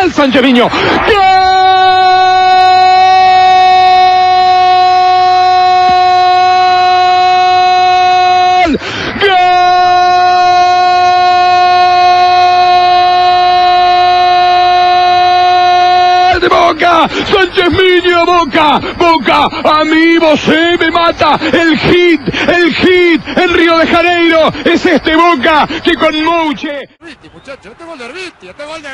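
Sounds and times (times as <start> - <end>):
commentator shouting goal: 0.0 - 26.9
quick breath: 0.7 - 1.0, 8.8 - 9.2.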